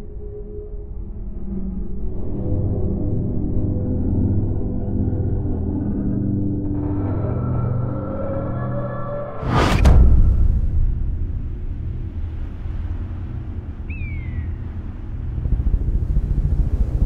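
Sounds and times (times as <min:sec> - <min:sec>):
low rumbling drone: 0:00.0 - 0:17.0.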